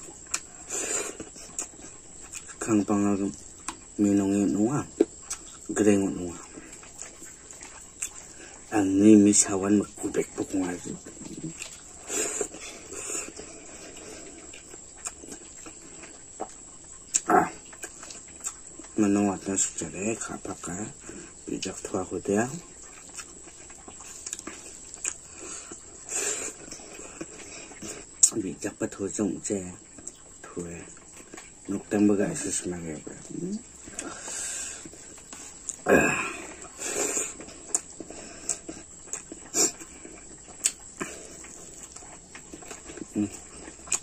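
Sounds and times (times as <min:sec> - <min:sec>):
man chewing and lip smacking: 0:00.0 - 0:19.8, 0:20.4 - 0:28.4, 0:29.8 - 0:44.0.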